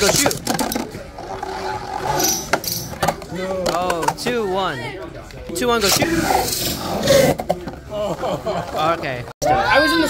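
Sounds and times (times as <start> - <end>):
spinning tops clacking together: 2.1 - 3.0.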